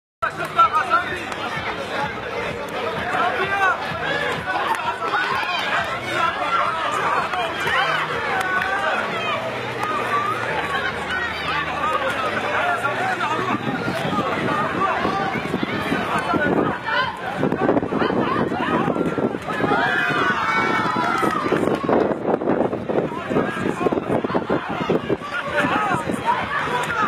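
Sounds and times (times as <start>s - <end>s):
crowd shouting and chattering: 0.2s - 27.0s.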